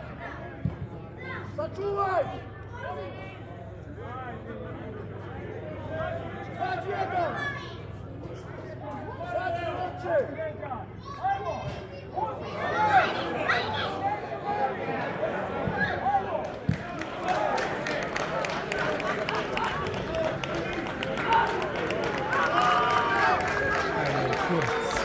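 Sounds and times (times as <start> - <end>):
people talking and calling: 0.0 - 25.0.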